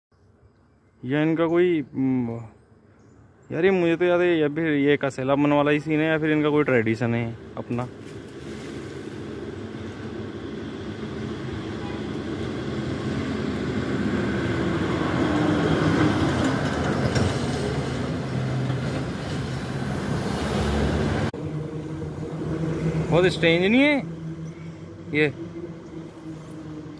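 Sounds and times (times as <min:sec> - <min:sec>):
motor vehicle rumble: 0:05.9 - 0:26.9.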